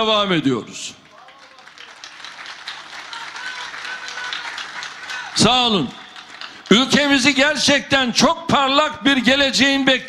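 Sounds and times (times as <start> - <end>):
crowd clapping: 1.0 - 7.8
faint voices calling out: 2.8 - 5.5.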